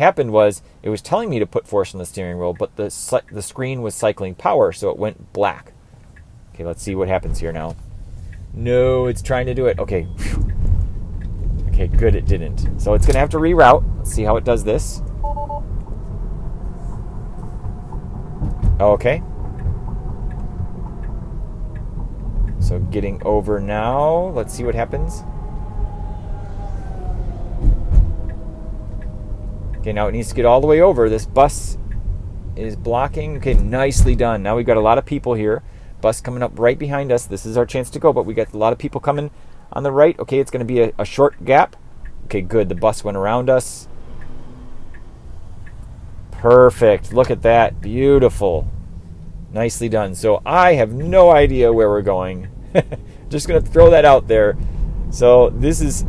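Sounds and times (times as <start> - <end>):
low road rumble: 0.0 - 56.0
turn signal ticking: 2.3 - 3.5, 5.2 - 36.1, 40.4 - 55.8.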